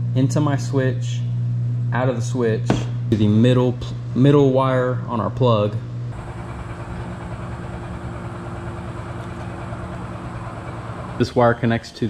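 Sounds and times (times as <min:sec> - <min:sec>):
mechanical hum with hiss: 0:00.0 - 0:12.0.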